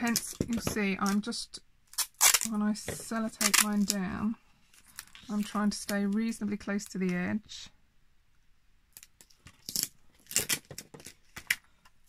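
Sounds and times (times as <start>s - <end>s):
plastic sheets crinkling: 2.0s - 7.0s.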